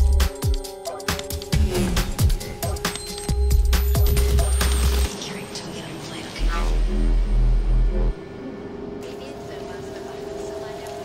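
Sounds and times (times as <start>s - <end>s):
held synth drone: 3.8s - 11.0s.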